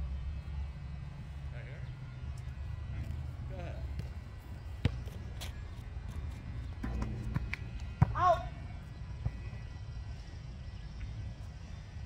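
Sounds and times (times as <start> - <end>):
basketball bouncing on asphalt: 3.9 - 9.8.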